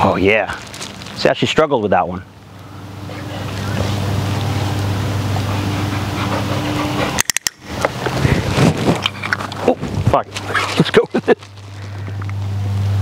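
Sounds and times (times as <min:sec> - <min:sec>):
low steady hum: 0:00.0 - 0:13.0
puppy whining: 0:05.2 - 0:07.3.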